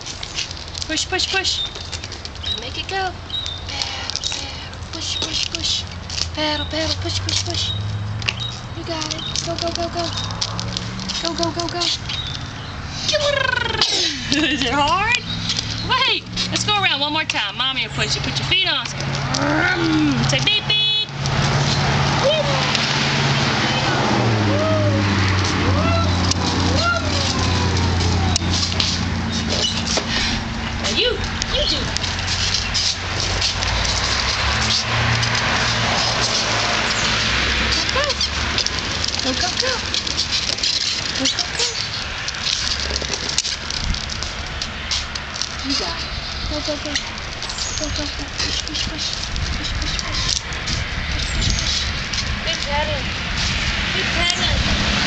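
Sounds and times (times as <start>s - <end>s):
plastic wheels rolling over concrete: 8.2s - 20.5s, 23.7s - 55.0s.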